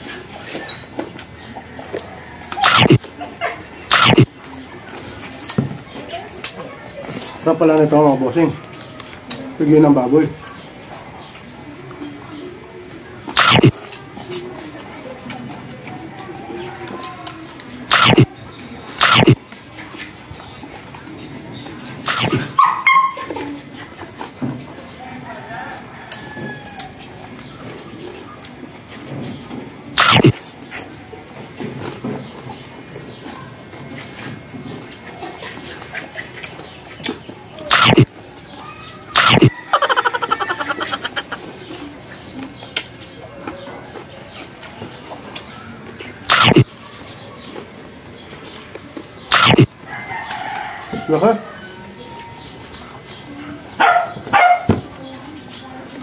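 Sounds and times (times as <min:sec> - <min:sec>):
chewing and smacking: 0:35.1 - 0:38.4.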